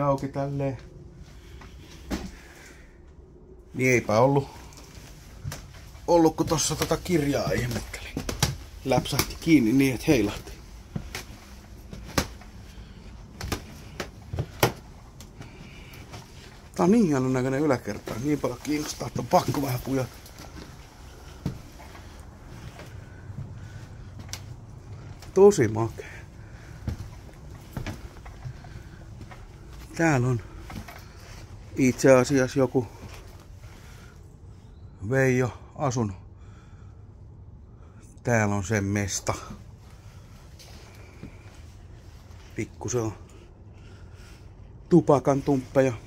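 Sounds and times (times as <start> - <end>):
low rumble of movement: 0.0 - 34.9
faint room noise: 0.0 - 46.0
footsteps on wooden floorboards: 5.4 - 16.6, 17.9 - 25.3, 26.0 - 31.5.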